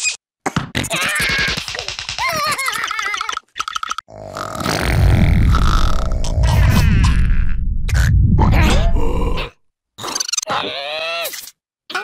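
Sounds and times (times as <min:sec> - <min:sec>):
cartoon fart sound effect: 0:04.4 - 0:08.1.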